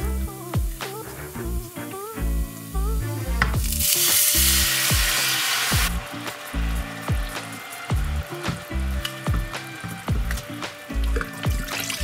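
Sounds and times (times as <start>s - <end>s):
background music with steady beat: 0.0s - 12.0s
liquid sizzling in a hot pan: 0.2s - 12.0s.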